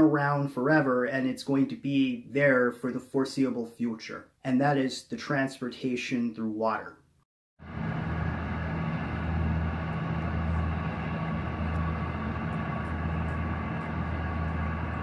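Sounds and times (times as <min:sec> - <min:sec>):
low engine rumble: 0:07.6 - 0:15.0
outdoor background noise: 0:07.6 - 0:15.0.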